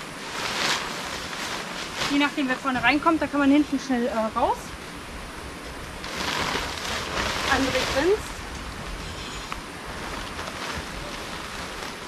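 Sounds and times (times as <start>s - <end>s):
tent fabric rustling: 0.0s - 4.6s, 5.6s - 12.0s.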